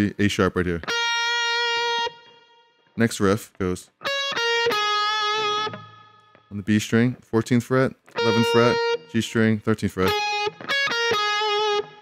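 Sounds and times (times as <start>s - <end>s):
electric guitar single note: 8.1s - 9.4s, 10.0s - 12.0s.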